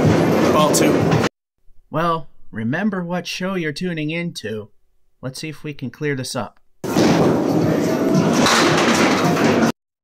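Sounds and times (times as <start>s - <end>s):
bowling ball rolling on wooden lane: 6.8s - 9.7s
bowling pins clattering: 6.8s - 9.7s.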